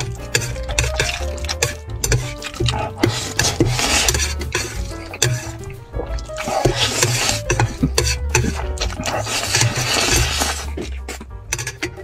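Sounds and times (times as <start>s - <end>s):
slurping noodles: 0.0s - 12.0s
wet chewing smacks: 0.0s - 12.0s.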